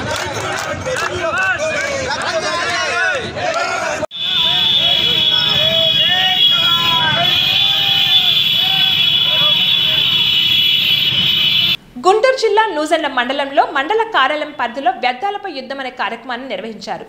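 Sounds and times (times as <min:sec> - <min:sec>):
men shouting: 0:00.0 - 0:10.4
horns blaring: 0:03.2 - 0:11.8.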